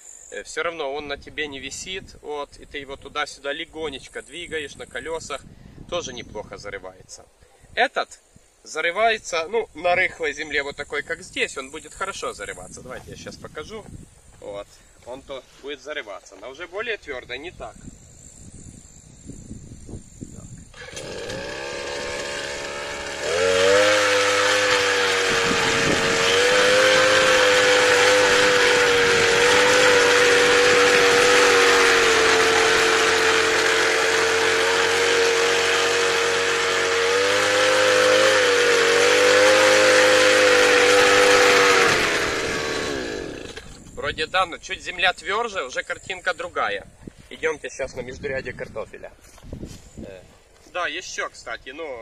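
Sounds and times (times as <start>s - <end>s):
brush cutter engine revving: 20.7s - 44.0s
tines digging into soil: 20.7s - 44.0s.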